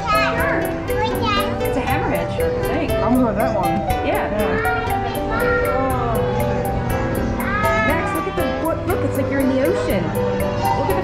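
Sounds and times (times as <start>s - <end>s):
children calling out: 0.0s - 1.6s, 4.5s - 11.0s
background music of held notes: 0.0s - 11.0s.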